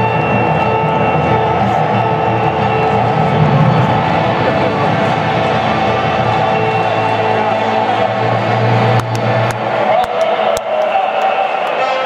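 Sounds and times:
stadium crowd: 0:00.0 - 0:12.0
stadium sound system: 0:00.0 - 0:12.0.

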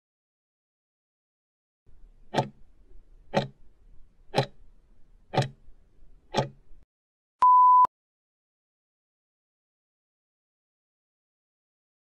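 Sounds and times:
clock ticks: 0:02.2 - 0:03.7, 0:04.3 - 0:04.6, 0:05.3 - 0:05.6, 0:06.3 - 0:06.8
short steady beep: 0:07.4 - 0:07.9.

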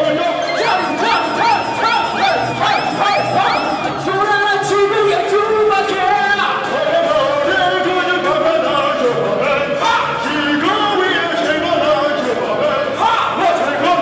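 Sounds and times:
karaoke backing track: 0:00.0 - 0:14.0
man singing into microphone: 0:00.0 - 0:14.0.

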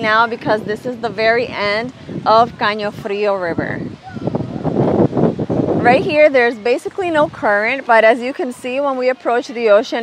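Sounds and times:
woman talking: 0:00.0 - 0:03.9, 0:05.8 - 0:10.0
wind buffeting microphone: 0:00.0 - 0:10.0.

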